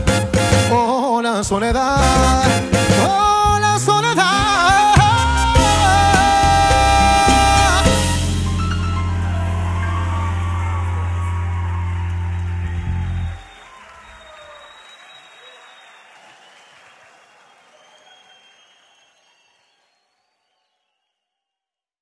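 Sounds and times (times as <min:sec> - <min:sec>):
live salsa band chord: 0:00.0 - 0:00.9, 0:02.0 - 0:13.6
audience applause: 0:04.0 - 0:20.3.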